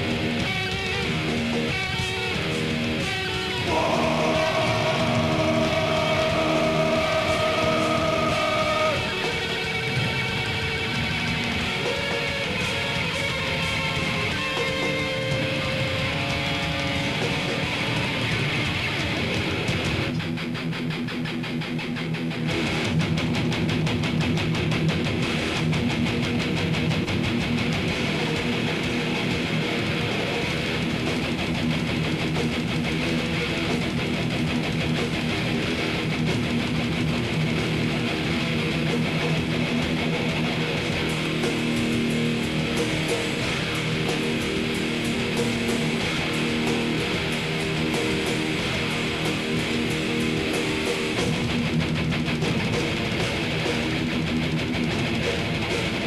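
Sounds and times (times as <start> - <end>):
heavy metal band playing live: 0.0 - 56.0.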